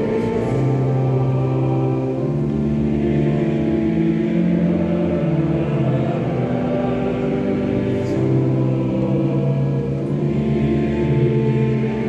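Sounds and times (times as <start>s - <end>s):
pipe organ: 0.0s - 12.0s
voices singing a hymn: 0.0s - 12.0s.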